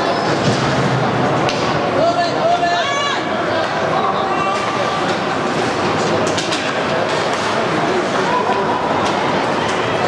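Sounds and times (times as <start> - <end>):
arena crowd: 0.0 - 10.0
hockey sticks clacking: 5.0 - 7.6.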